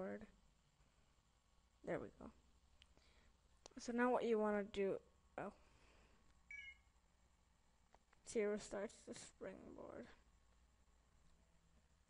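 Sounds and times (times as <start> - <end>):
faint short beep: 6.5 - 6.9.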